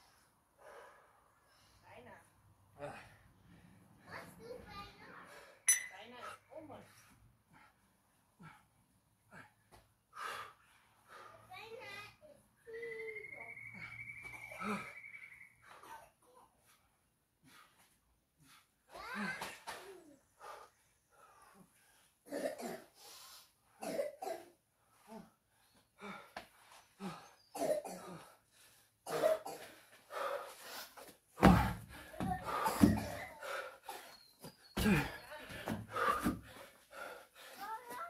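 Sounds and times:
man breathing hard: 7.0 - 11.5, 29.6 - 37.8.

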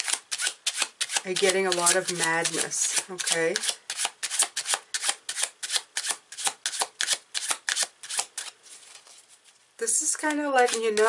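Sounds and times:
cards being shuffled: 0.0 - 9.6.

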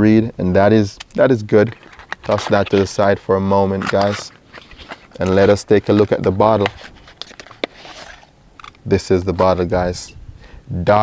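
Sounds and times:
man speaking: 0.0 - 4.4, 5.2 - 6.8, 8.8 - 11.0
cardboard rustle: 1.6 - 8.8.

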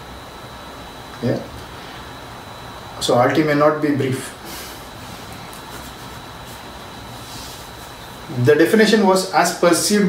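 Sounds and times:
faint high whine: 0.0 - 10.0
low hum and hiss: 0.0 - 10.0.

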